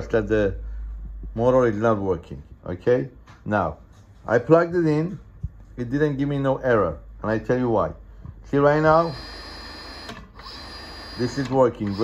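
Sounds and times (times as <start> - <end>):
sewing machine motor whine: 8.9 - 12.0.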